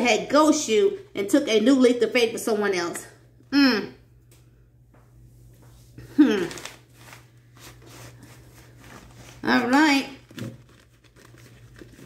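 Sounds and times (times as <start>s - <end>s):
cards shuffled by hand: 10.2s - 12.0s.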